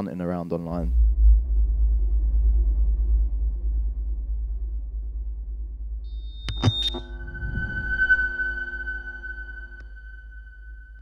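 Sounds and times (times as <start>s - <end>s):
deep electronic rumble: 0.7s - 11.0s
ringing electronic chord: 6.1s - 11.0s
sharp glitchy clicks: 6.4s - 7.2s.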